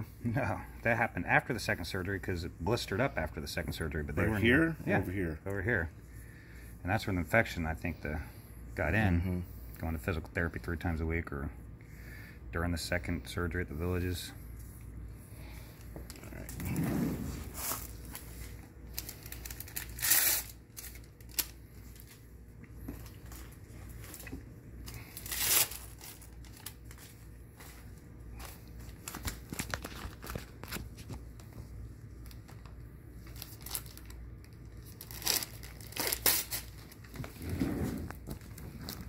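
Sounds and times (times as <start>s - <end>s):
packaging crinkling and tearing: 17.6s - 22.2s, 23.0s - 27.2s, 28.4s - 31.2s, 32.2s - 37.4s.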